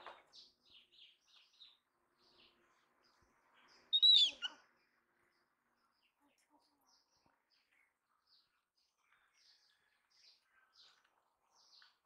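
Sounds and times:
high-pitched animal call: 0:04.0 - 0:04.5
faint short high chirps: 0:04.0 - 0:04.6.

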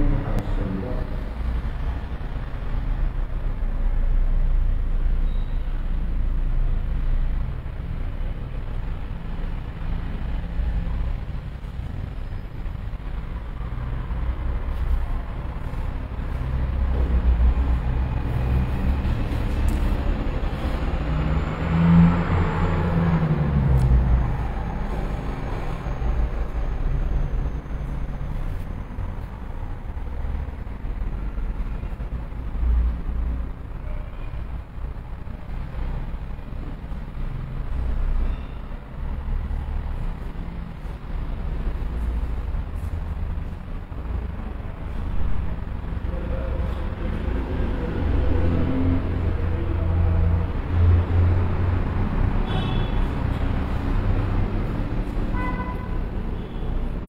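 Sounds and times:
low rumble of road traffic: 0:00.0 - 0:57.0
vehicle passing: 0:06.6 - 0:33.8, 0:34.4 - 0:57.0.

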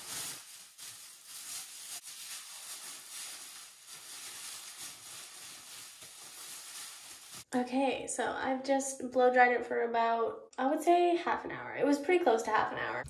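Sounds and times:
plastic bag crinkling: 0:00.0 - 0:07.5.

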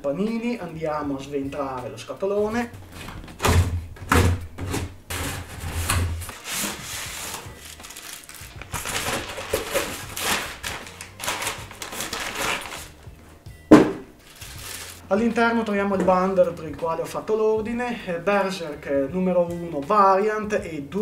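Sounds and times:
cardboard rubbing and rustling: 0:04.6 - 0:12.9, 0:14.2 - 0:15.0
blade slitting packing tape: 0:06.2 - 0:12.9
sharp thump: 0:13.7 - 0:14.1.

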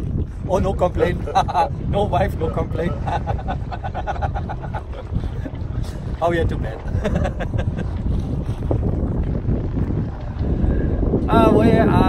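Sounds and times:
water rushing past boat: 0:00.0 - 0:12.0
wind rumbling on microphone: 0:00.0 - 0:12.0.

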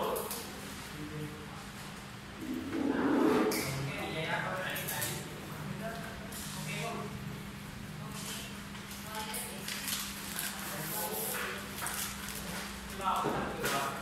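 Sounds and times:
steady hum: 0:00.5 - 0:06.3
indistinct voices talking: 0:02.4 - 0:03.9.

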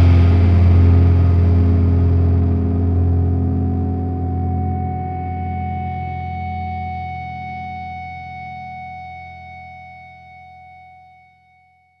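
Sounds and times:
rock band sustained chord: 0:00.0 - 0:08.0.

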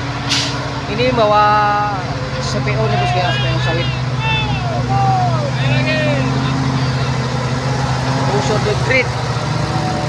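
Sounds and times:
truck diesel engine running: 0:00.0 - 0:10.0
high rising and falling calls: 0:02.2 - 0:10.0.

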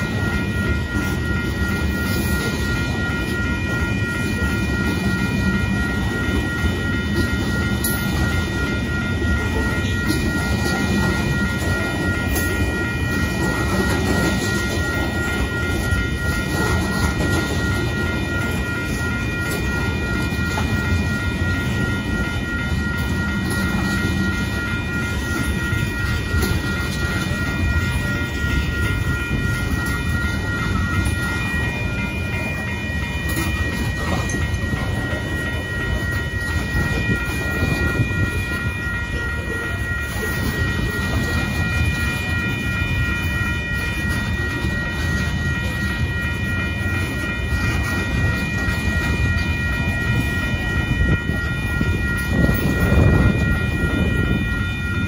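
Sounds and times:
crossing signal bell ringing: 0:00.0 - 0:55.0
freight train wheels on rail: 0:00.0 - 0:55.0.

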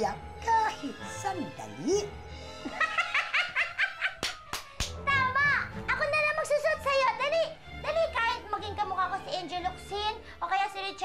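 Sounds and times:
hand claps: 0:04.0 - 0:05.1.

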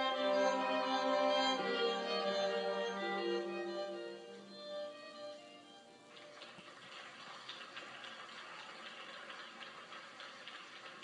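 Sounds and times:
faint audience applause: 0:06.0 - 0:11.0.

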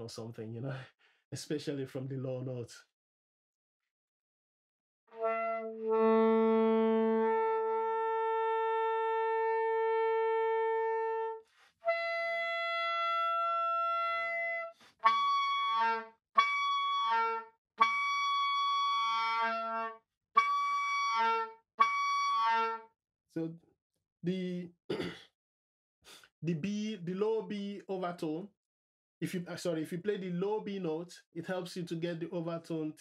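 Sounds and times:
soprano saxophone overtones: 0:05.1 - 0:22.9.

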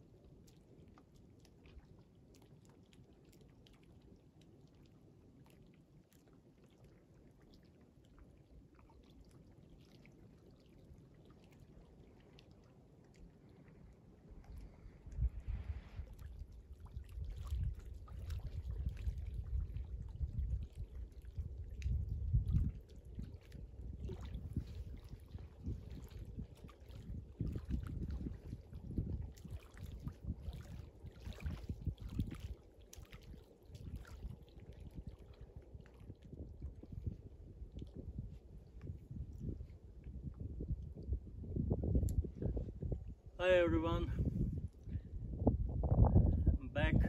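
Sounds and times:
small waves lapping: 0:00.0 - 0:39.0
wind gusting on microphone: 0:14.8 - 0:30.7, 0:31.4 - 0:32.4, 0:36.2 - 0:47.0.

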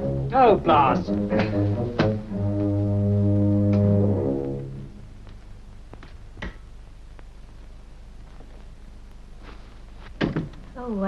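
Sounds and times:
low brass chord: 0:00.0 - 0:05.1.

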